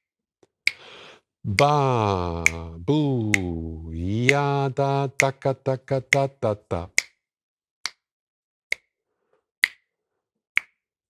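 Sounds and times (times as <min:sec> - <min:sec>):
finger snaps: 0:00.7 - 0:03.6, 0:07.8 - 0:08.1, 0:08.7 - 0:08.9, 0:09.6 - 0:09.9.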